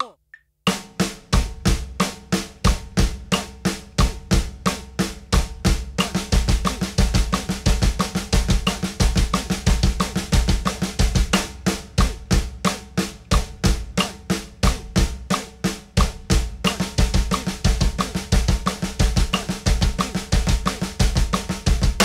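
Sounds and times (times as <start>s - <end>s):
snare drum strokes: 0.7s - 22.0s
double bass drum kicks: 1.4s - 22.0s.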